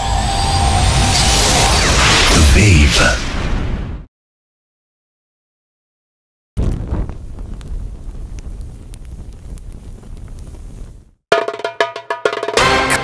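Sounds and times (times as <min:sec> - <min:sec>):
low fire rumble with crackles: 0:06.6 - 0:11.2
music with pitched percussion: 0:11.3 - 0:13.0.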